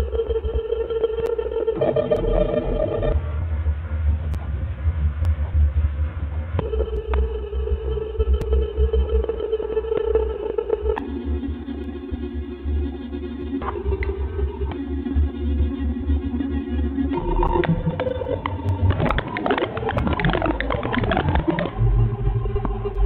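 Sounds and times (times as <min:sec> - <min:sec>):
noisy synth wash: 0:00.0 - 0:23.0
pulsing deep rumble: 0:00.0 - 0:23.0
synthesized electronic drone: 0:00.0 - 0:23.0.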